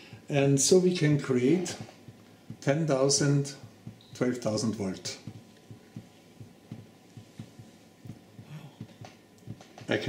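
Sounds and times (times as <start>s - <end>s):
water drops tapping: 1.6s - 9.9s.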